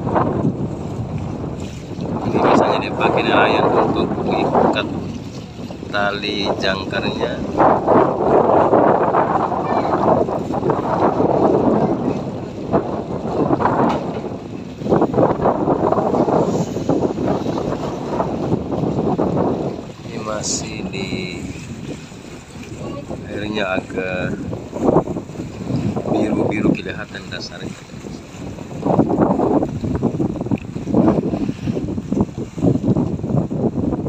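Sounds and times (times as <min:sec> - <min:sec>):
water rushing along boat: 0:00.0 - 0:34.0
wind buffeting microphone: 0:00.0 - 0:34.0
faint voices: 0:11.6 - 0:12.6.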